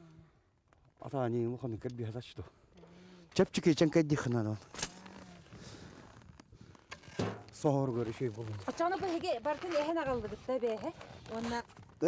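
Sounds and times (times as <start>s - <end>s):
man speaking: 3.4s - 4.7s
metallic clink with ringing: 4.7s - 5.2s.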